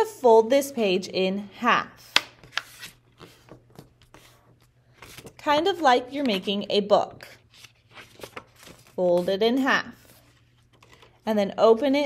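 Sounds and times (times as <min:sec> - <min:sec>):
paper rustling and rubbing: 0:02.4 - 0:05.4, 0:07.2 - 0:10.8.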